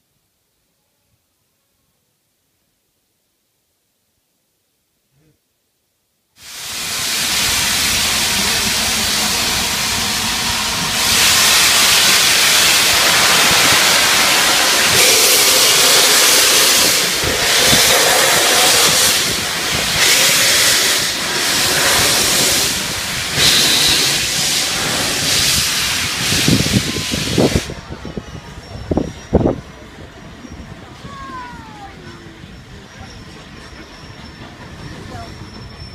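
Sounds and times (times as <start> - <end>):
steam locomotive hissing: 6.4 - 35.9.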